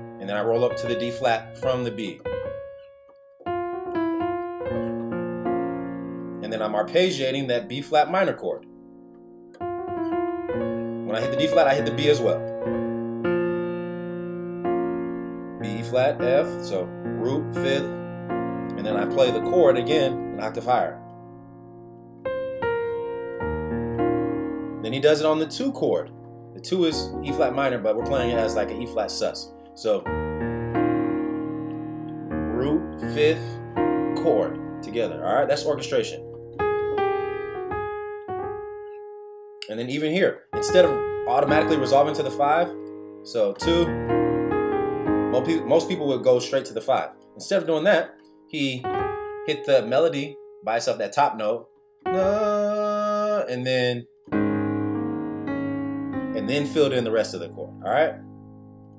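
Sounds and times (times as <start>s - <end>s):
low piano bass notes: 0.0s - 58.9s
piano playing broken chord: 0.0s - 58.9s.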